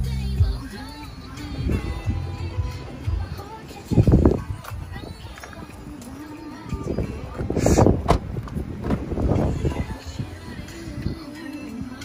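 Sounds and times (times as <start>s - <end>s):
wind rumbling on microphone: 1.4s - 12.0s.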